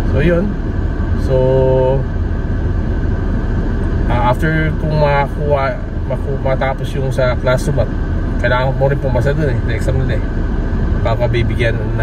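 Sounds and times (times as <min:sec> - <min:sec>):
engine idling: 0:00.0 - 0:12.0
ventilation fan running: 0:00.0 - 0:12.0.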